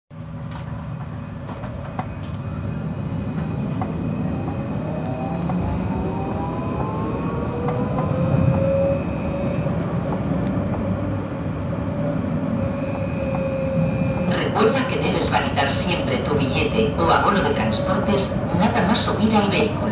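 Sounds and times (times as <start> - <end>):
wheels rumbling on rail: 0.1 - 19.9
tram motor whine: 0.2 - 19.9.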